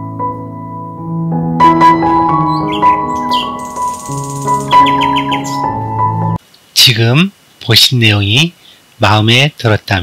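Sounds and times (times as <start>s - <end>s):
calm keyboard and piano music: 0.0s - 6.4s
birds chirping: 2.0s - 6.4s.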